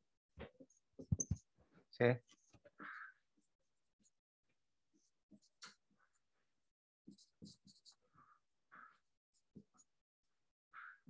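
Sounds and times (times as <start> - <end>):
stylus scratching on tablet: 7.1 - 9.8.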